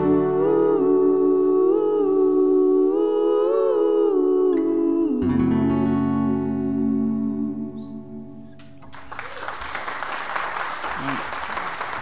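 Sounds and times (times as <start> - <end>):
voices humming in harmony: 0.0 - 5.4
acoustic guitar ringing: 4.6 - 9.1.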